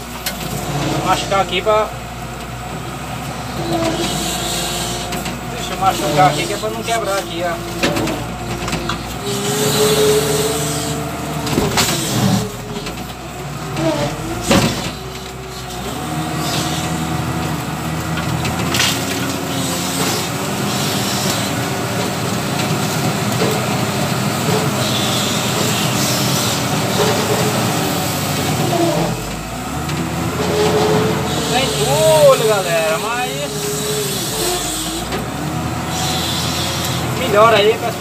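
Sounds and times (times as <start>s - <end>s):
loader diesel engine under load: 0.0s - 38.0s.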